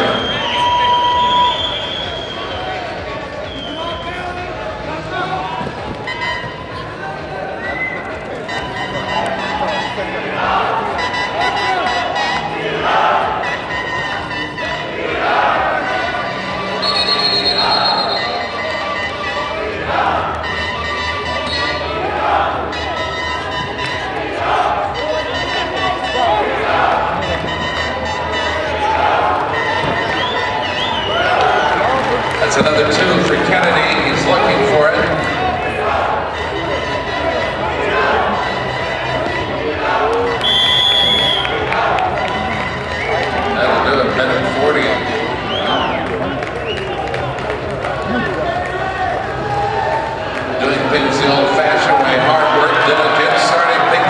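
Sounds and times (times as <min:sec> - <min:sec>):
arena crowd noise: 0:00.0 - 0:54.0
crowd chanting rhythmically: 0:08.6 - 0:47.0
crowd clapping: 0:28.8 - 0:34.8, 0:40.1 - 0:54.0.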